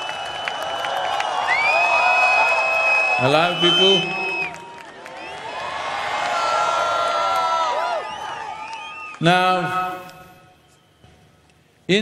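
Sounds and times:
crowd cheering and whooping: 0.0 - 9.2.

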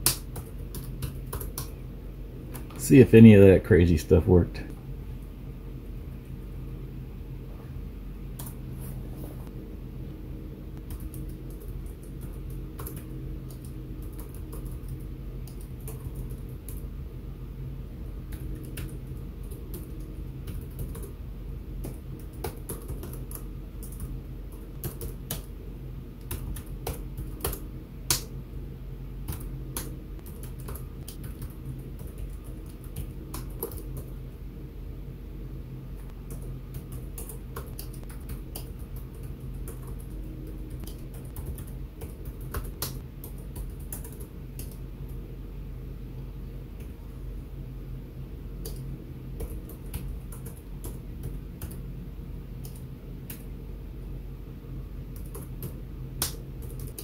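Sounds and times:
typing on computer keyboard: 0.0 - 1.7, 10.8 - 16.8, 18.3 - 21.1, 21.8 - 25.5, 26.2 - 28.2, 29.3 - 34.1, 36.3 - 44.8, 55.2 - 57.0
steady low hum: 0.0 - 57.0.

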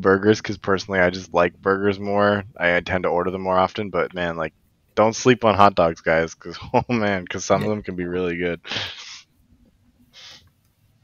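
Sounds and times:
person speaking: 0.0 - 9.2
soft breathy puff: 10.1 - 10.5.

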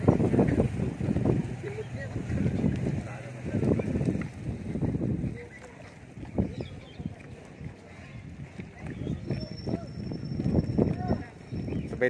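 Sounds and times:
faint voices: 0.0 - 12.0
wind rumbling on microphone: 0.0 - 12.0.

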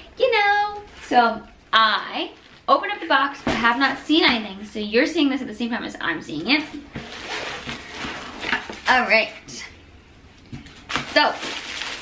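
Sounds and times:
cardboard box rustling and scraping: 6.9 - 8.9.

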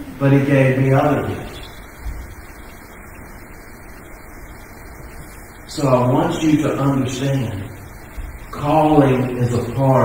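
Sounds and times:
faint low hum: 0.0 - 10.0
steady low hiss: 0.0 - 10.0.

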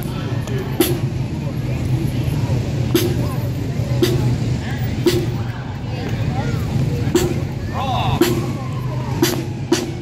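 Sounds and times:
crowd voices: 0.0 - 10.0
marching drum strikes: 2.8 - 5.5, 7.0 - 7.6, 8.2 - 10.0.

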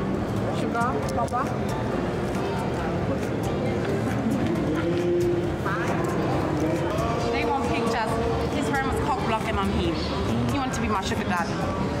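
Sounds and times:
hubbub of many voices: 0.0 - 12.0.

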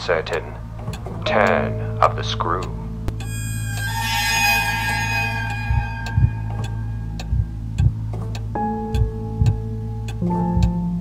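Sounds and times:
clock ticking: 0.0 - 11.0
dark trailer music chord: 1.3 - 8.1
bright shimmering strike: 3.2 - 7.6
low thuds: 5.6 - 9.7.

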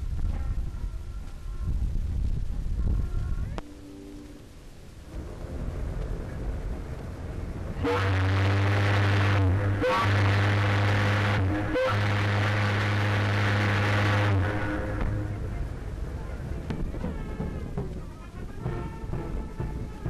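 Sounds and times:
low rumble: 0.0 - 20.0
ship's whistle blasts: 7.8 - 15.5.

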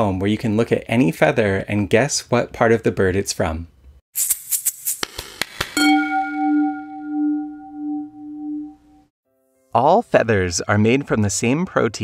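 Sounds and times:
bell-like tone ringing: 5.8 - 9.1.

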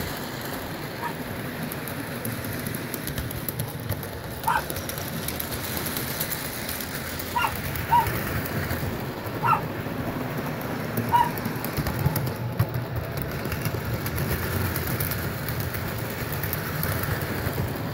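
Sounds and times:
model train rattling rumble: 0.0 - 17.9.

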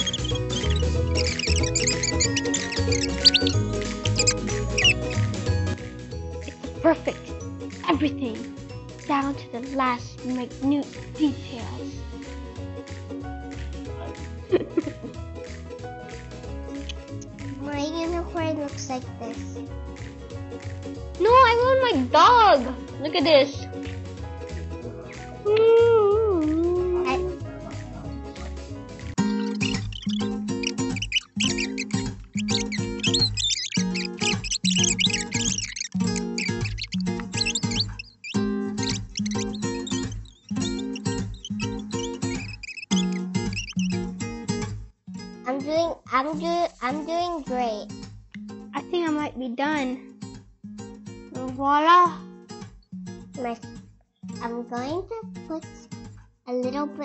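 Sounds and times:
high squeaky chirps: 0.0 - 5.8, 29.2 - 44.4
playful music with pulsing bass: 0.0 - 44.8.

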